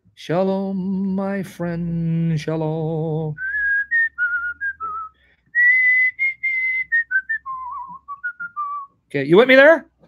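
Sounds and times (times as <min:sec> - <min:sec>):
man whistling a tune: 0:03.4 - 0:09.0.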